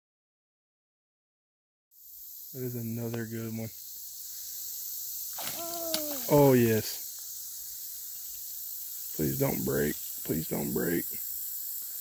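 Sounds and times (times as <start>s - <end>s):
steady high hiss: 1.9s - 12.0s
woman exclaiming: 5.5s - 6.4s.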